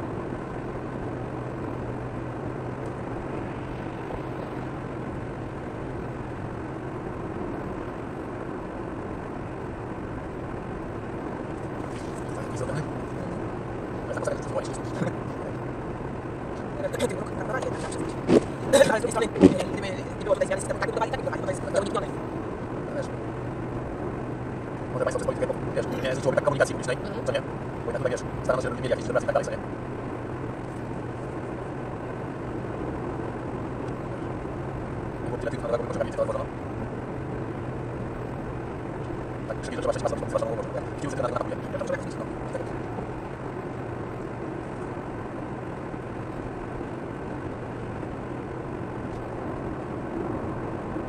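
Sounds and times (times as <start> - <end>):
road and tyre noise in car: 0.0 - 51.0
voices: 11.8 - 15.7, 16.6 - 23.2, 24.8 - 29.7, 35.2 - 36.6, 39.4 - 42.9.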